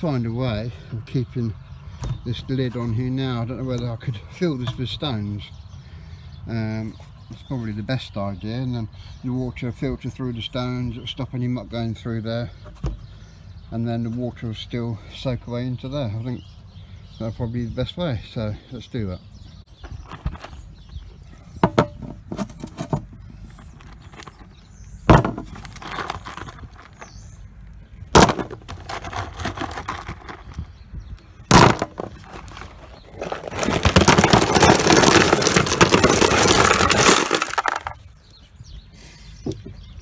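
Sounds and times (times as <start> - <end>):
stones rattling and clattering: 21.6 - 27.2, 28.1 - 30.7, 31.5 - 38.1
stones knocking on plastic lid: 25.1 - 27.0, 28.1 - 30.7, 31.5 - 38.0.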